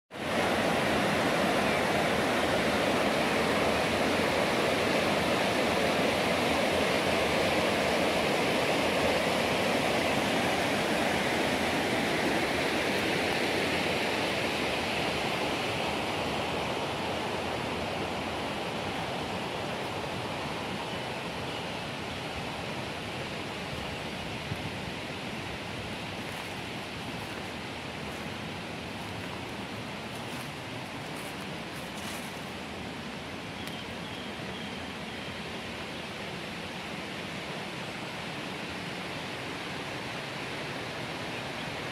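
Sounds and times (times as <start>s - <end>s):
river rushing over boulders: 0.1s - 41.9s.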